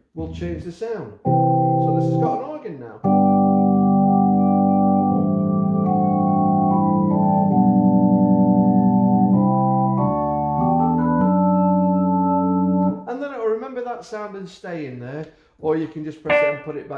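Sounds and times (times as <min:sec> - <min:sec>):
organ chords: 0:01.2 - 0:13.0, 0:16.3 - 0:16.9.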